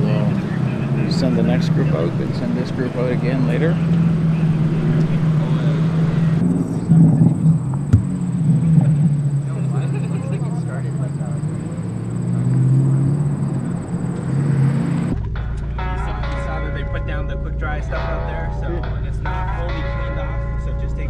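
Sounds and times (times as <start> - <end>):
car engines running low: 0.0 - 15.8.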